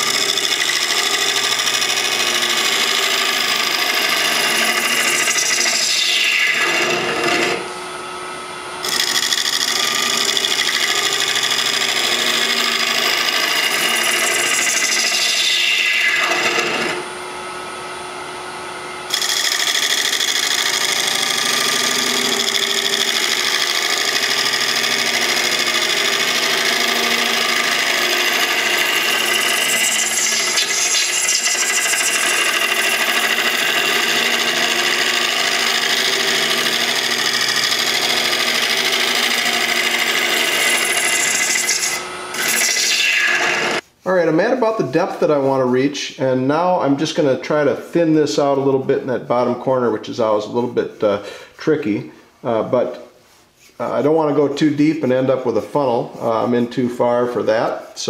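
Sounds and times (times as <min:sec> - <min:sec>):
scraper cutting bowl on lathe: 0:00.0 - 0:07.7, 0:08.8 - 0:17.1, 0:19.1 - 0:43.8
lathe running: 0:00.0 - 0:43.8.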